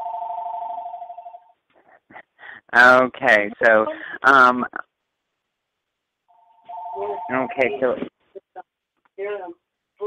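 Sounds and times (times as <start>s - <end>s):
two-pitch telephone tone: 0.0s - 1.5s, 6.3s - 7.7s.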